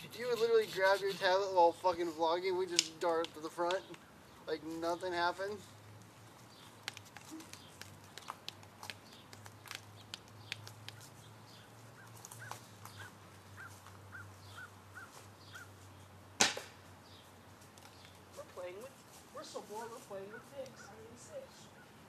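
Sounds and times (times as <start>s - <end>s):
bird chirping: 3.1s - 16.2s
sharp loud knock: 16.4s - 16.7s.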